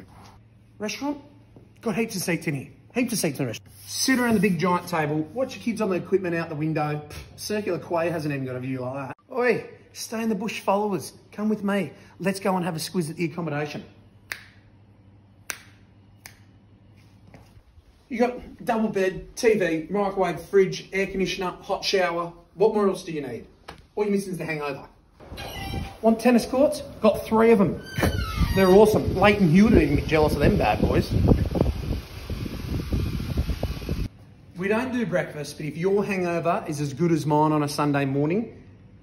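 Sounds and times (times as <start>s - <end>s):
finger snaps: 14.2s - 14.7s, 15.4s - 16.6s
wind buffeting microphone: 28.6s - 34.1s.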